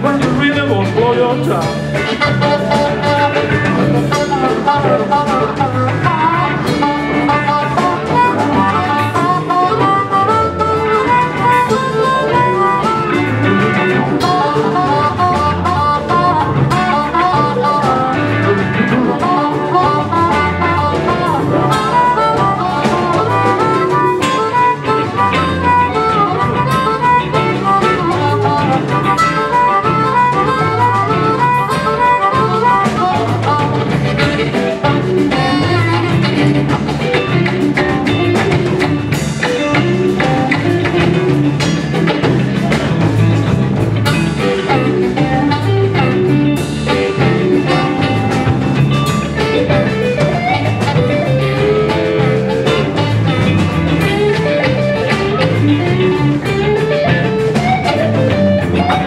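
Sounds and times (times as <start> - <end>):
live blues band playing: 0.0 - 59.0
amplified harmonica solo: 0.2 - 59.0.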